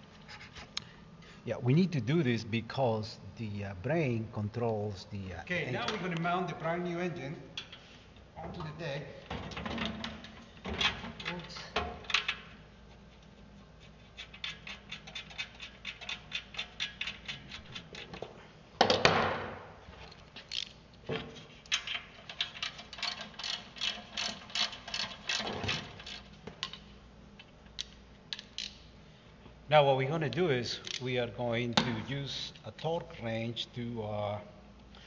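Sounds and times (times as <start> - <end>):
socket ratchet clicking: 27.8 - 28.8.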